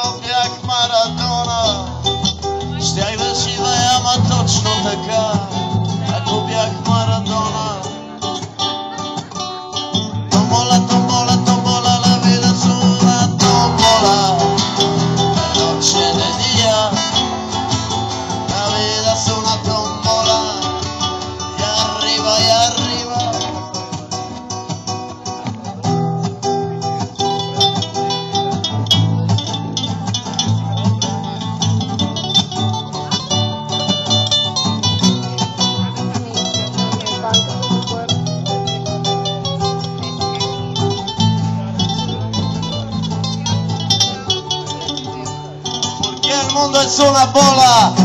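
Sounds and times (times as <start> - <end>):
acoustic guitars strumming: 0.0 - 48.0.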